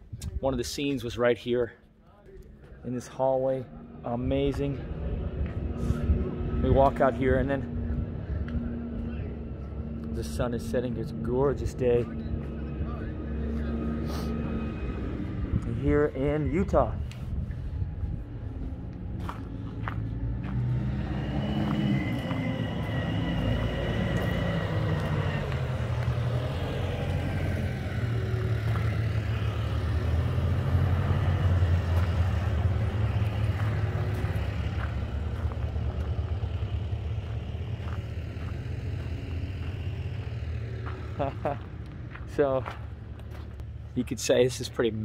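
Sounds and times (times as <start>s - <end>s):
engine running: 0.9s - 45.0s
high whine: 1.1s - 45.0s.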